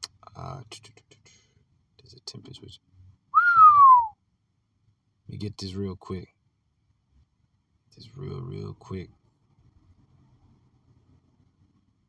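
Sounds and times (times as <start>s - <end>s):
person whistling a sliding note: 3.4s - 4.1s.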